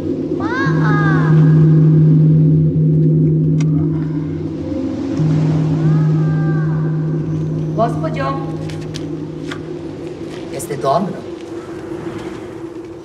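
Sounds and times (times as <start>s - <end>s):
low soundtrack drone: 0.0s - 13.0s.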